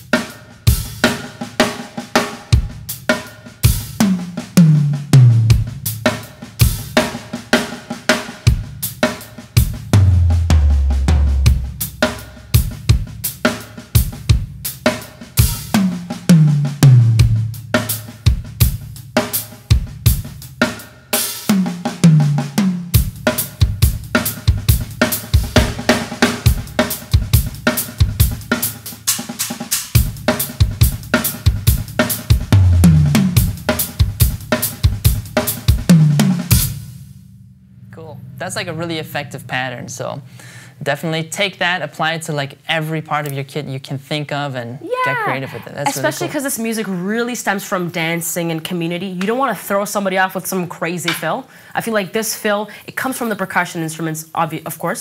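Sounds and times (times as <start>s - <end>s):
tom drum fill falling in pitch: 0.0s - 29.1s, 30.0s - 40.8s
drum kit groove: 0.0s - 41.6s, 44.8s - 51.5s.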